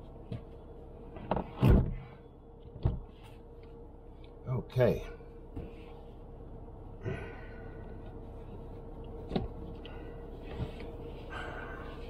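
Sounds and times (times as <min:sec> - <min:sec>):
faint steady hum: 0:00.0 - 0:12.0
body shifting in car seat: 0:08.0 - 0:12.0.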